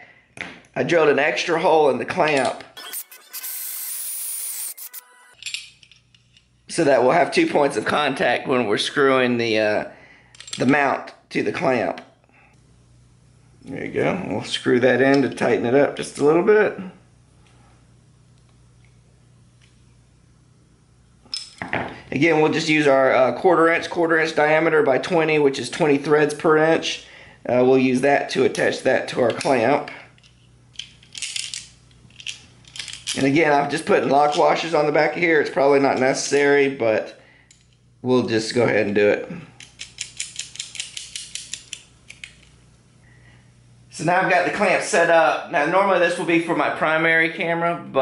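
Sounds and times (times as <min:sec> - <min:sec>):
faint low room hum: 0:05.4 - 0:48.0
small metal parts clicking: 0:30.2 - 0:33.2, 0:39.6 - 0:42.6.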